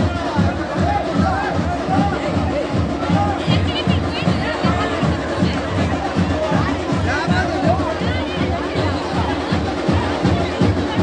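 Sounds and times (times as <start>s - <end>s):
crowd of men shouting: 0.0s - 5.1s
fast steady drumbeat: 0.0s - 11.0s.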